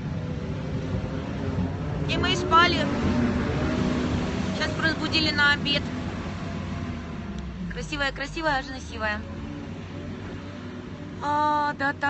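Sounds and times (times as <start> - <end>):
outdoor background rumble with hiss: 0.0 - 12.0.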